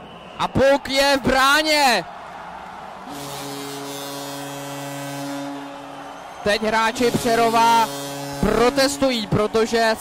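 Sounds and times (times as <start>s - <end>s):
crowd cheering: 0.0s - 10.0s
goal horn low buzzing tone: 3.1s - 6.2s, 6.8s - 9.4s.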